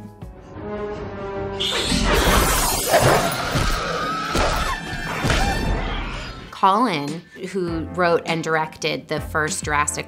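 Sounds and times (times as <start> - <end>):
tense film music: 0.0 - 10.0.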